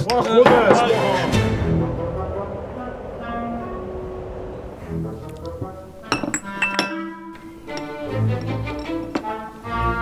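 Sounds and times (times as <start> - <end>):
background music: 0.0 - 10.0
tableware clinking: 6.0 - 9.5.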